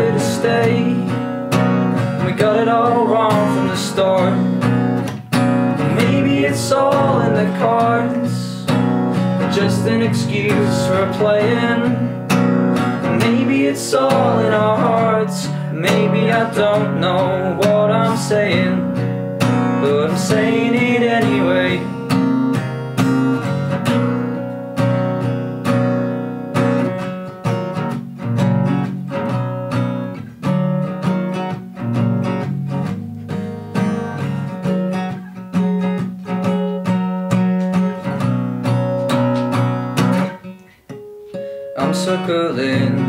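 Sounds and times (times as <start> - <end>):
acoustic guitar strumming chords: 0.0 - 43.0.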